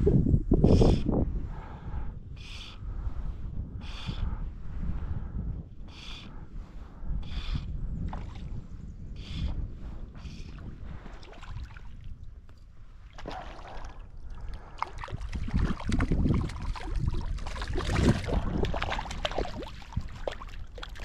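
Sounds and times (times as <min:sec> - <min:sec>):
wind rumble on microphone: 0:00.0 - 0:21.0.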